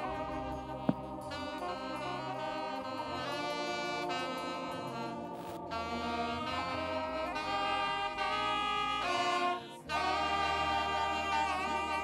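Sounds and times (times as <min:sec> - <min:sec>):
saxophone melody: 0:00.0 - 0:12.0.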